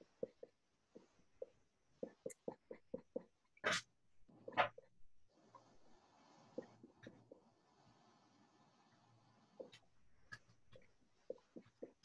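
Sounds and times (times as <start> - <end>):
paintbrush tapping on board: 0.1 - 3.4.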